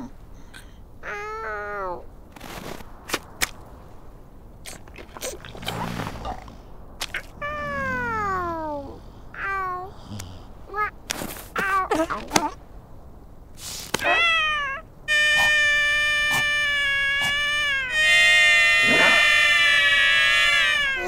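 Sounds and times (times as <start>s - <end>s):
cartoon seal squeaky calls: 7.2s - 8.4s, 14.0s - 21.0s.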